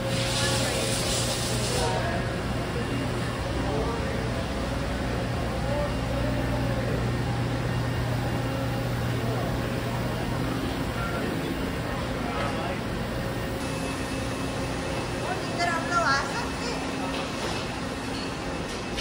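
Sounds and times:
machinery and ventilation hum: 0.0 - 19.0.

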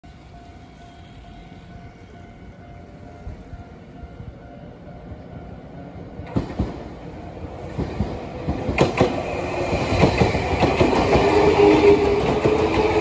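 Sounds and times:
electric train rumble: 0.0 - 13.0.

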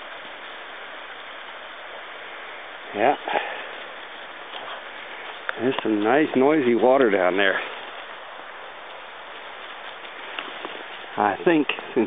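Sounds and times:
stream rushing water: 0.0 - 12.0.

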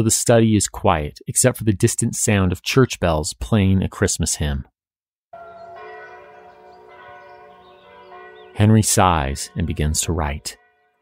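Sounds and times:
distant church bells ringing hymn: 5.4 - 11.0.

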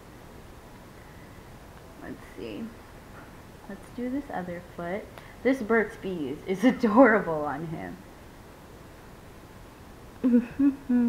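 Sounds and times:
woman humming: 10.2 - 11.0.

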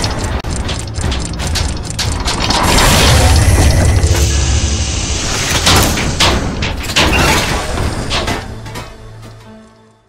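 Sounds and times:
ratchet-like clicks: 0.0 - 4.3
deep low rumble: 0.0 - 6.9
gear clatter: 0.0 - 9.5.

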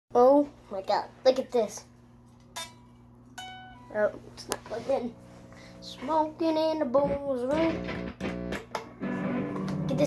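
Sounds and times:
unplugged guitar string plucked: 7.6 - 9.9.

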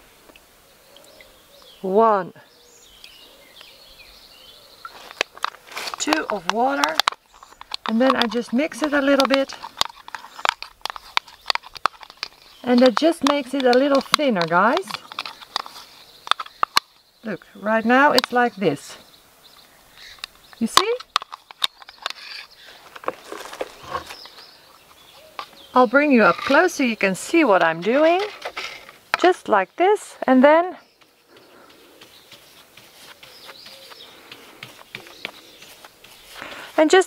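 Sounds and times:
birds chirping: 0.0 - 37.0
spoon stirring wet liquid: 4.8 - 16.8
paintbrush scratching: 5.6 - 16.2, 31.3 - 37.0.

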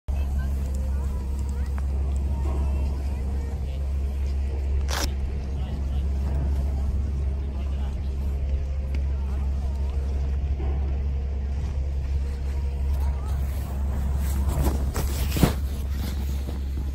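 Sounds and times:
low rumble on microphone: 0.1 - 16.9.

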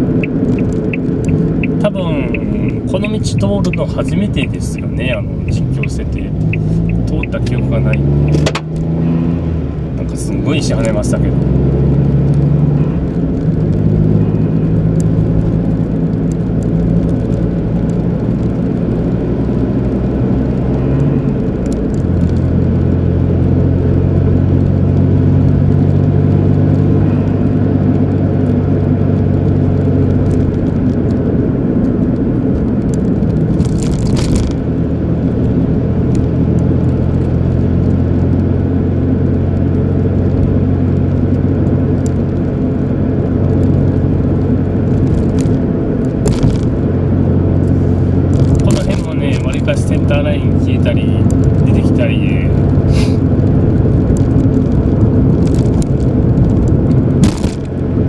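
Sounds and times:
car engine and tyre drone: 0.0 - 58.0.

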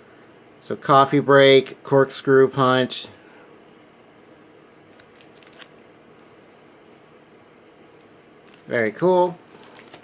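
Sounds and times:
low room hiss: 0.0 - 10.0
plastic sleeve crinkling: 4.9 - 6.4, 8.4 - 10.0.

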